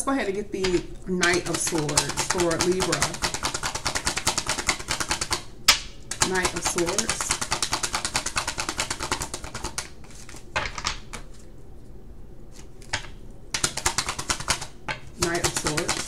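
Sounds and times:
cards being shuffled: 1.2 - 5.4, 6.1 - 11.5, 12.5 - 16.0.

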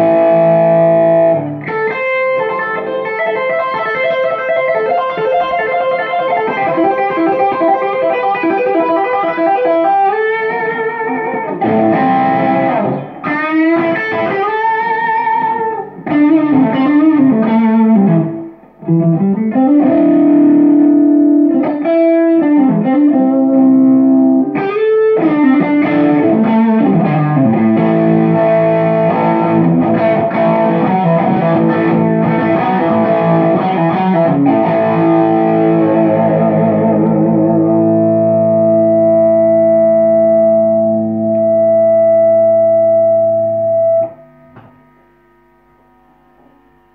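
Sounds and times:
distorted electric guitar: 0.0 - 46.9.

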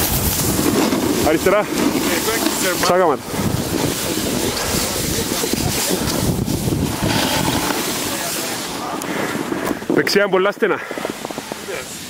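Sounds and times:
snowboard sliding over snow: 0.0 - 12.0
wind rushing over microphone: 0.0 - 12.0.

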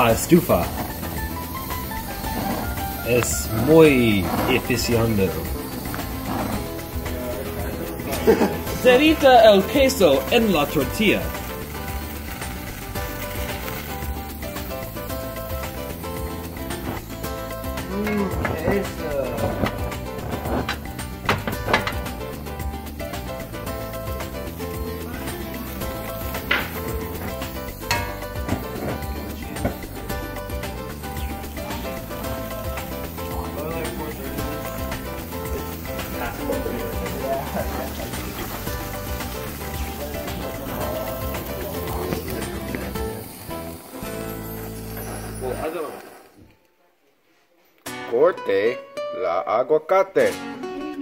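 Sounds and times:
background music: 0.0 - 47.0, 47.8 - 51.0.

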